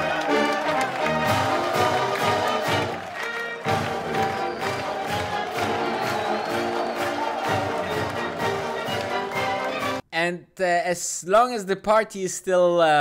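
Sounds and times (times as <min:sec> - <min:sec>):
brass marching band: 0:00.0 - 0:10.0
crowd cheering: 0:00.0 - 0:10.0.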